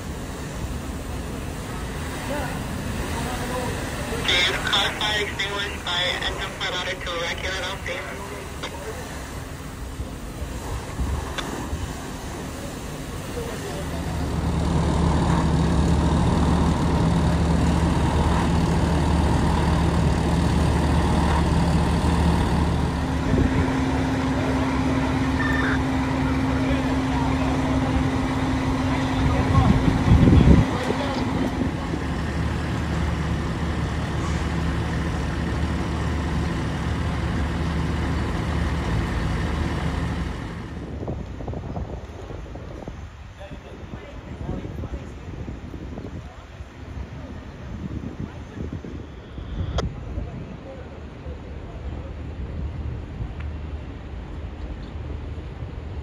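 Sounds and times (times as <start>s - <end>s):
diesel engine droning: 0.0s - 41.6s
steady tone: 11.6s - 40.7s.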